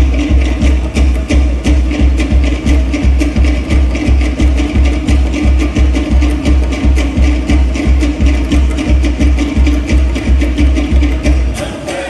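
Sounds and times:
deep drum beat: 0.0 - 11.9.

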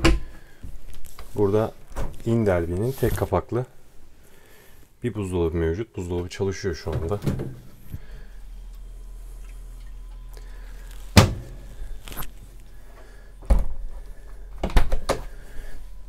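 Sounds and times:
low steady hum: 0.0 - 16.0
fridge door shutting knocks: 11.2 - 11.6.

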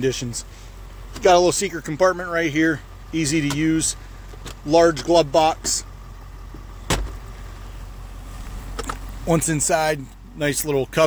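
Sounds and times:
glove box door clicking shut: 6.8 - 7.2.

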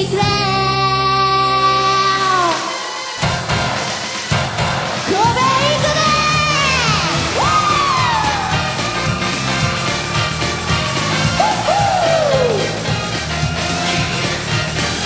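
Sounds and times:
live pop song with steady beat: 0.0 - 15.0.

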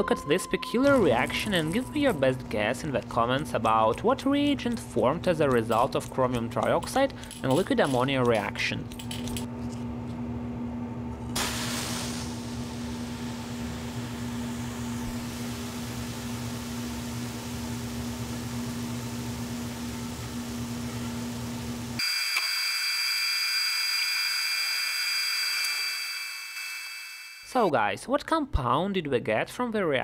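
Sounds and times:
steady high tones: 0.0 - 3.6, 22.0 - 27.7
liquid pouring rush: 11.4 - 19.7
chemical reaction hissing: 11.4 - 20.8.

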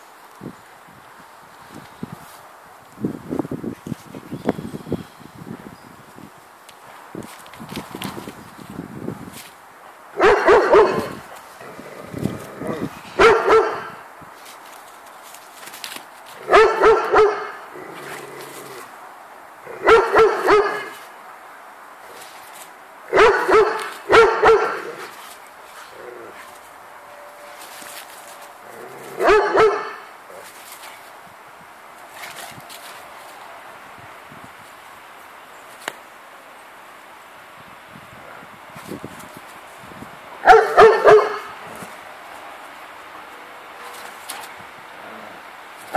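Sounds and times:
large dog barking: 10.1 - 11.2, 12.7 - 14.0, 16.4 - 17.6, 19.7 - 21.0, 23.1 - 25.2, 28.8 - 30.1, 40.4 - 41.6.

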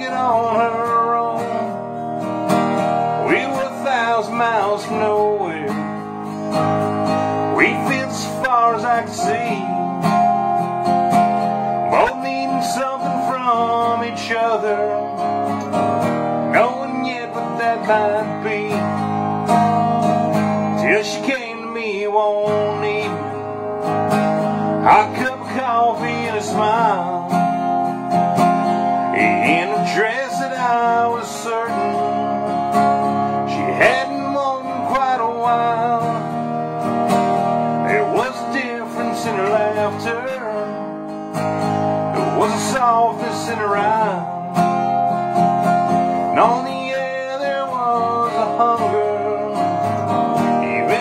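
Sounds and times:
acoustic guitar strumming: 0.0 - 51.0.

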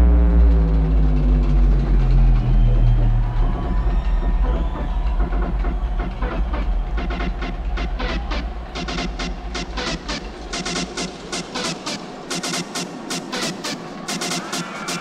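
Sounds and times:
synth tone sliding down: 0.0 - 5.2
deep bass: 0.0 - 11.3.

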